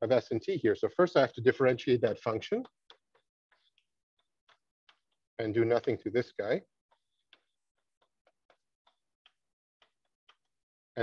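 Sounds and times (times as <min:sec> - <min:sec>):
chalk tapping on blackboard: 0:02.6 - 0:05.3, 0:06.9 - 0:10.6.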